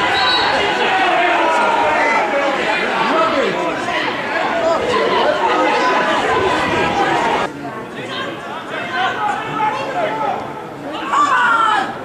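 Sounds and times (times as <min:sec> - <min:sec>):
overlapping chatter of voices: 0:00.0 - 0:12.0.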